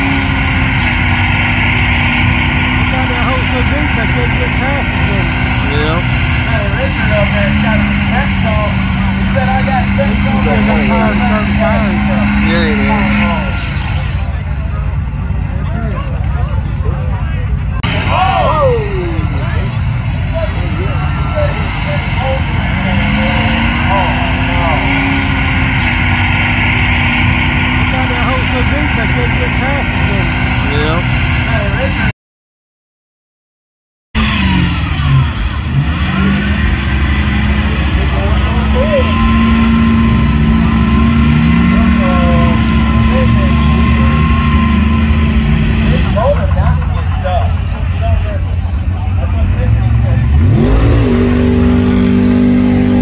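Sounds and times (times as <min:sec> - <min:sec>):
diesel engine revving under load: 0:00.0 - 0:32.1, 0:34.2 - 0:53.0.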